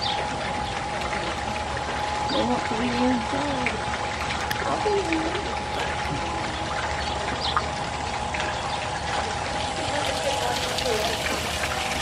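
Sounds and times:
distant voices: 0:00.0 - 0:12.0
faint steady hum: 0:00.0 - 0:12.0
running water rushing: 0:00.0 - 0:12.0.

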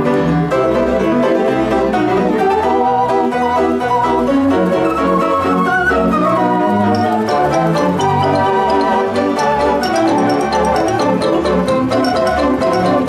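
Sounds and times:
player piano music with oom-pah bass: 0:00.0 - 0:13.0.

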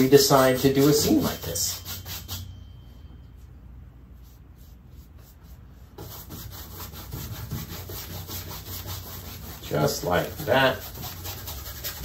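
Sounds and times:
paintbrush scrubbing on canvas: 0:00.0 - 0:02.5, 0:04.2 - 0:12.0.

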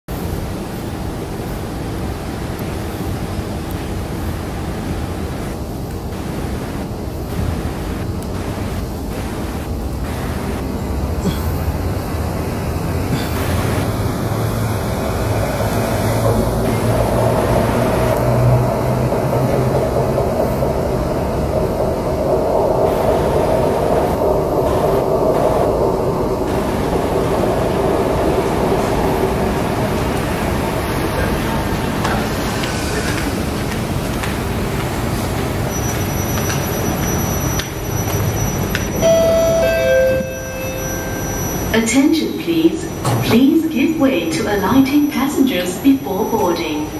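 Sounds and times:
metro train braking to a stop: 0:09.1 - 0:46.9
two-note door chime: 0:39.0 - 0:41.7.

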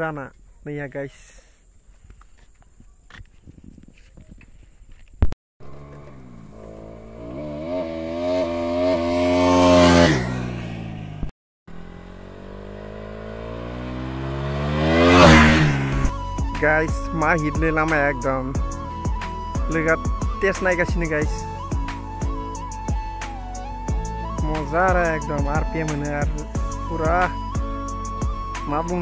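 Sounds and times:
motorcycle passing by: 0:05.6 - 0:16.2.

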